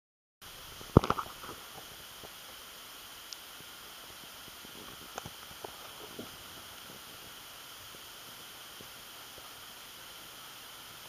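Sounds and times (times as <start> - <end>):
faint steady hiss: 0.4 - 11.0.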